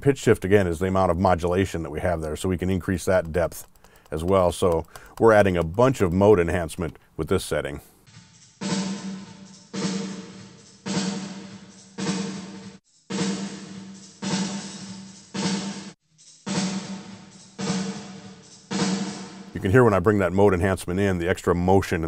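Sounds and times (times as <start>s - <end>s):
drum kit beat: 3.1s - 7.0s, 8.0s - 20.5s.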